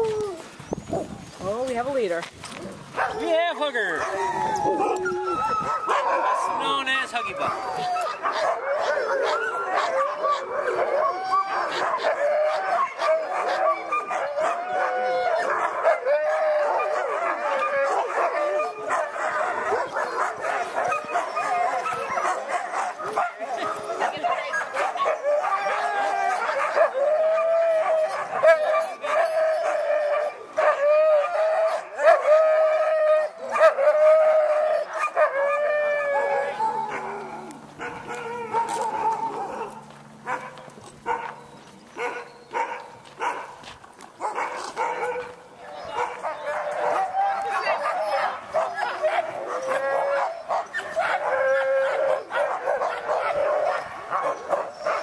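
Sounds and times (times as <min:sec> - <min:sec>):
sled dogs barking and howling: 0:00.0 - 0:55.0.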